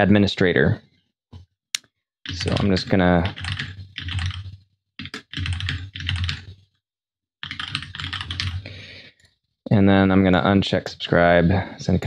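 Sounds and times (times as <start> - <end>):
typing on computer keyboard: 2.3 - 6.6, 7.4 - 8.7.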